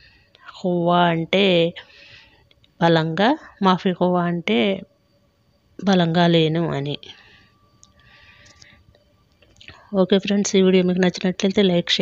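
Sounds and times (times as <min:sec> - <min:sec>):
short breath: 0:01.8 - 0:02.4, 0:07.1 - 0:08.9.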